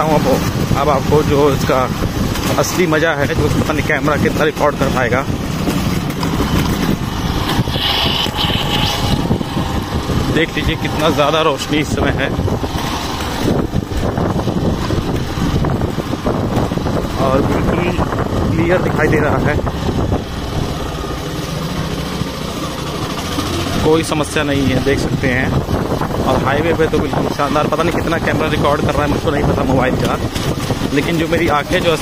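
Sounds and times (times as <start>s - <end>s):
motorcycle engine running: 0.0s - 32.0s
wind rumbling on microphone: 0.0s - 32.0s.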